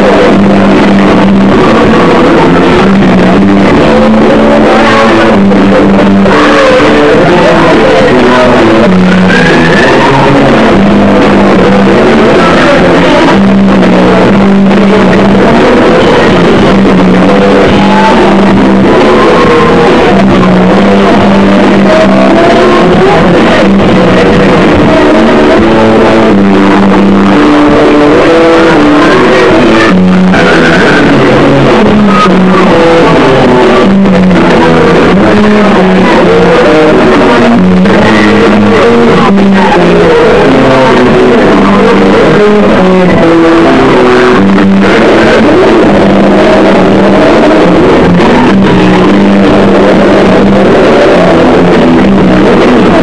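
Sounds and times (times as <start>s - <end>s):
distorted bass notes: 0.0s - 53.0s
loud distorted rock band: 0.0s - 53.0s.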